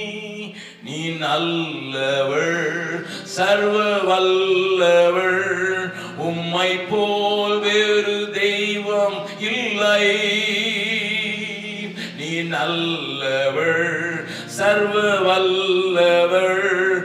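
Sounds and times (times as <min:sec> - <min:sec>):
man singing into a microphone: 0:00.0 - 0:17.0.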